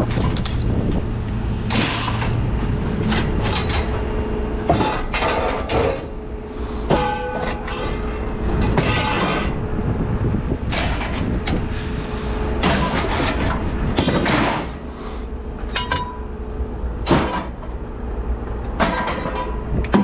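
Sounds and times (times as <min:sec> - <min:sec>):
scrap metal clanking and scraping: 0:00.0 - 0:01.0, 0:01.6 - 0:09.7, 0:10.6 - 0:16.3, 0:17.0 - 0:17.8, 0:18.8 - 0:20.0
low rumble: 0:00.0 - 0:20.0.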